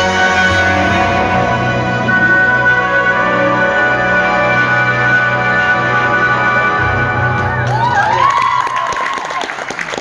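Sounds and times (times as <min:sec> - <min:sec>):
long high note: 0:00.0 - 0:07.7
floor routine music: 0:00.0 - 0:10.0
spectators applauding: 0:07.4 - 0:10.0.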